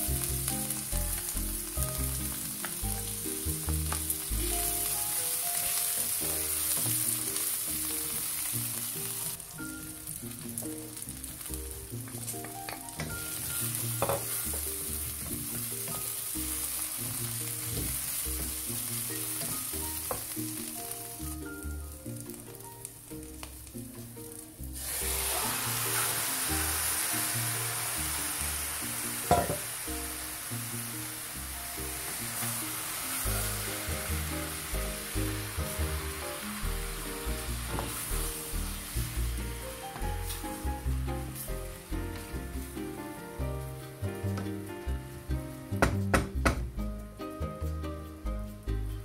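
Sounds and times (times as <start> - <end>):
food sizzling in a frying pan: 0.0 - 48.7
background music: 0.0 - 49.0.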